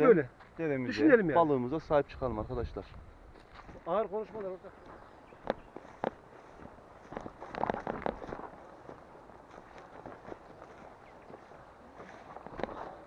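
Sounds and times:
footsteps through grass and brush: 0:02.8 - 0:13.0
twigs and leaves crackling underfoot: 0:02.9 - 0:13.0.

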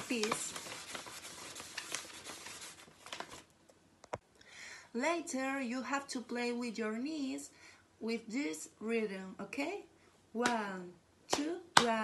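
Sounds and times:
paper rustling and crackling: 0:00.0 - 0:03.5.

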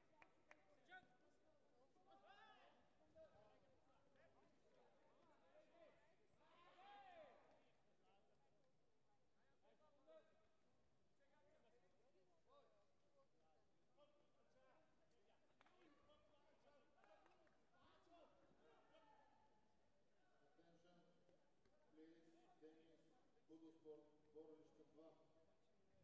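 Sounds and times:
faint voices in large hall: 0:00.0 - 0:26.0.

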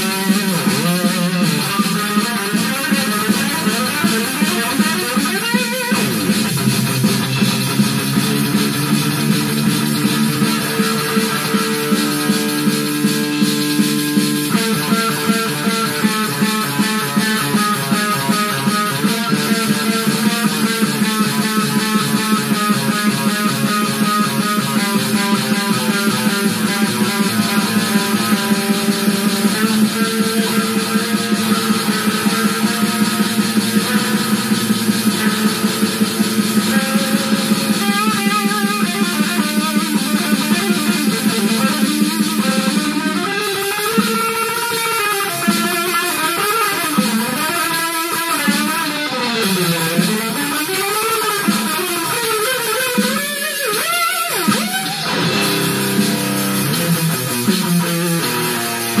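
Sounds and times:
electric guitar metal riff: 0:00.0 - 0:59.0.

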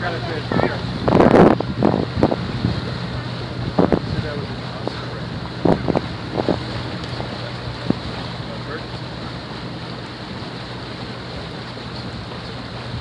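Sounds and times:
boat engine hum: 0:00.0 - 0:13.0
water washing past hull: 0:00.0 - 0:13.0
wind buffeting microphone: 0:00.0 - 0:13.0.

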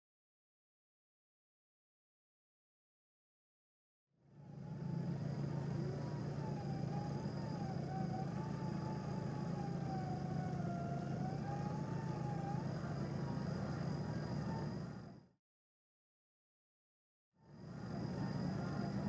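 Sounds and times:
electric winch whining: 0:04.3 - 0:15.2
truck engine humming: 0:04.4 - 0:15.2.

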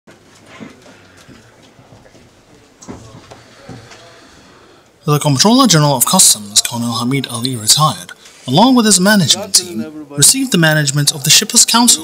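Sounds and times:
low indistinct voices: 0:00.1 - 0:11.0.

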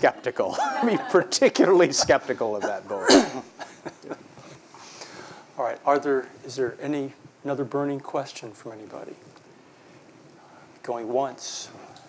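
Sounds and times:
person laughing: 0:02.0 - 0:04.2.

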